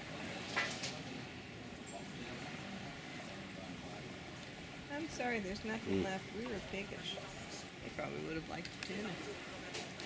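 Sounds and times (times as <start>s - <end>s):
faint background voices: 0.0s - 10.0s.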